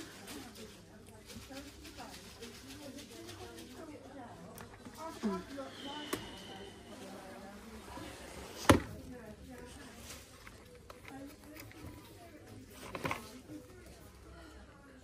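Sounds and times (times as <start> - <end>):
faint background voices: 0.0 - 15.0.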